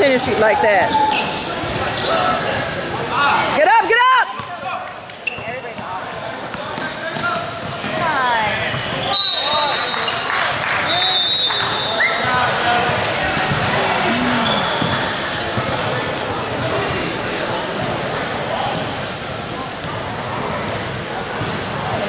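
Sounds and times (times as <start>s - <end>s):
sneakers squeaking on gym floor: 0.9s - 3.7s, 5.2s - 5.8s
referee's whistle: 9.0s - 10.2s, 10.9s - 12.4s
background voices: 13.2s - 14.8s.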